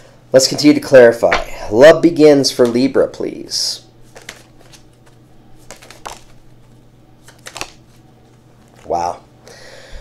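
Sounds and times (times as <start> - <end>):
low steady hum: 0.0 - 10.0
cards being shuffled: 4.0 - 9.1.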